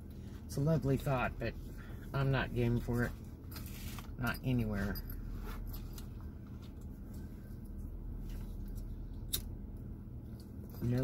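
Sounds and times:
car idling hum: 0.0s - 11.0s.

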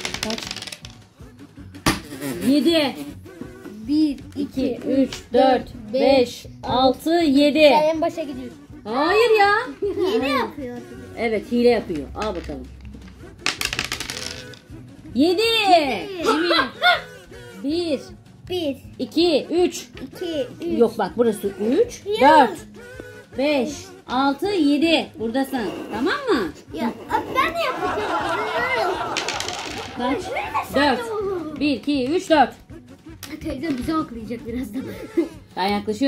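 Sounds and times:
dice clattering on a tabletop: 0.0s - 1.1s, 11.9s - 14.7s, 29.0s - 30.1s.

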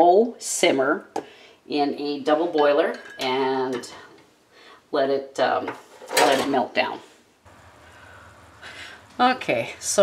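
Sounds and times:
low steady hum: 7.4s - 10.0s.

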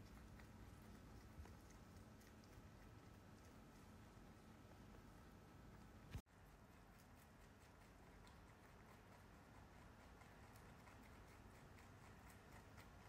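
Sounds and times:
rabbits chewing greens: 0.0s - 13.0s.

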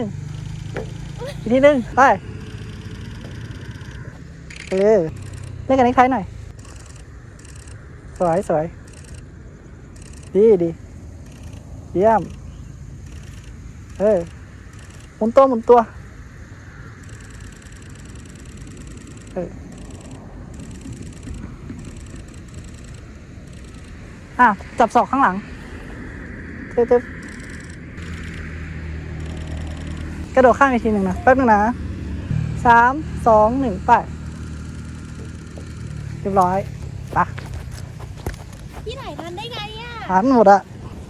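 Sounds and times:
low outdoor rumble: 0.0s - 41.0s
person shouting: 1.2s - 2.0s.

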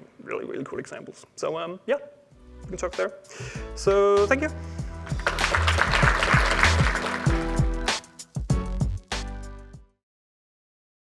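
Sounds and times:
background music with steady beat: 2.2s - 10.0s
audience applauding: 5.0s - 8.2s.

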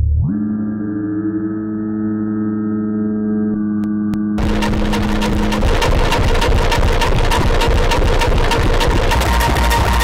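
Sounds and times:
low drone tone: 0.0s - 10.0s
distorted electronic noise: 3.9s - 10.0s
heavy low rumble: 4.1s - 9.5s
rapid clicking pulse: 4.4s - 10.0s.

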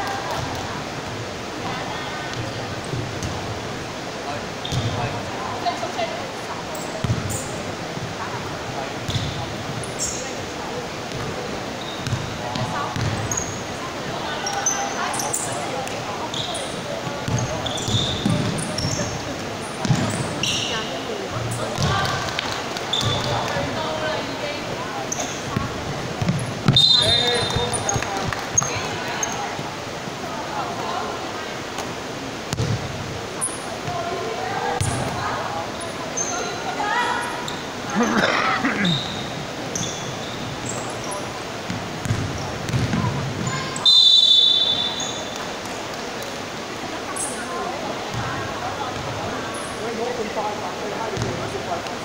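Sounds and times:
voices echoing in hall: 0.0s - 52.0s
sneaker squeaks: 4.6s - 5.2s, 6.8s - 7.6s, 9.0s - 10.4s, 11.1s - 23.5s, 25.1s - 29.6s, 34.8s - 35.2s, 35.8s - 38.0s, 38.8s - 41.3s, 42.0s - 45.4s
basketball bouncing on court: 7.0s - 7.4s, 12.0s - 13.3s, 17.0s - 19.0s, 19.8s - 20.2s, 21.7s - 23.6s, 25.5s - 28.8s, 32.5s - 32.9s, 34.8s - 35.2s, 41.7s - 43.5s, 51.2s - 51.4s.

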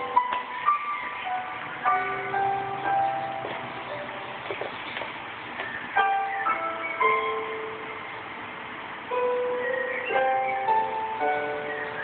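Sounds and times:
electronic toy melody: 0.0s - 4.1s, 6.0s - 8.1s, 9.1s - 12.0s.

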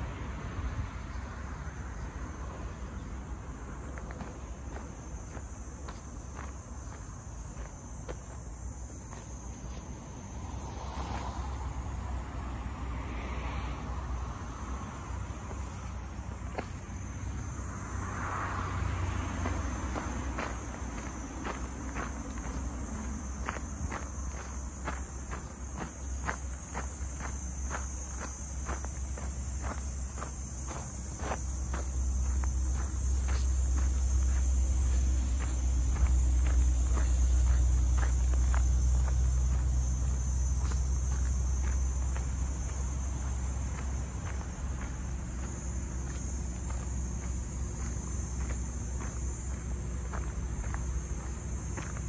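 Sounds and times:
insects droning: 0.0s - 52.0s
footsteps on dirt path: 3.7s - 11.8s, 15.2s - 17.8s, 19.4s - 52.0s.

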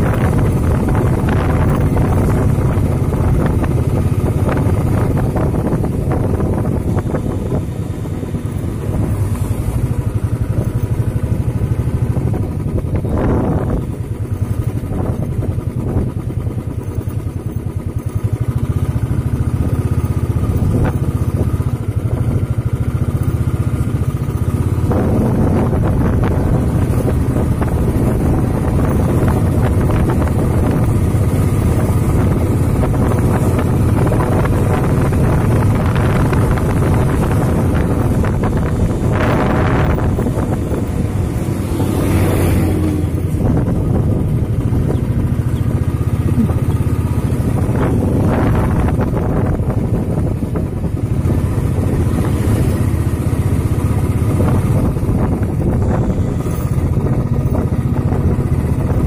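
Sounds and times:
vehicle engine running: 0.0s - 59.0s
wind noise on microphone: 0.0s - 59.0s.

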